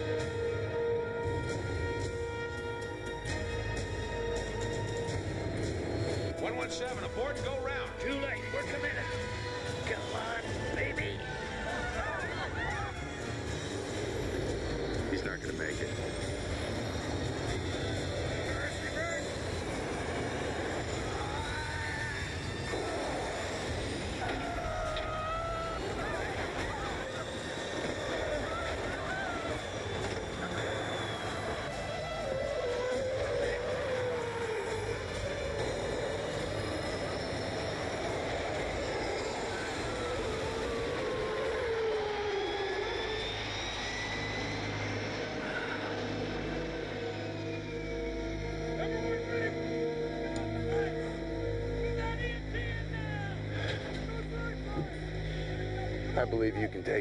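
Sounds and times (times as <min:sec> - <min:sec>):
engine whine: 0:00.0 - 0:57.0
jet engines running: 0:00.0 - 0:57.0
music: 0:00.0 - 0:57.0
indistinct voices: 0:06.1 - 0:57.0.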